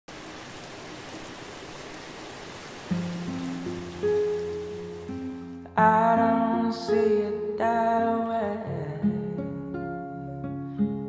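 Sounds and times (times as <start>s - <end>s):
steady rain hiss: 0.1s - 5.6s.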